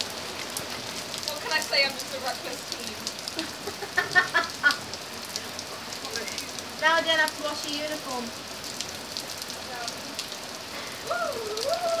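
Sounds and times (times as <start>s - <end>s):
heavy rain on paving and roof: 0.0s - 12.0s
high wavering vocal sound: 11.0s - 12.0s.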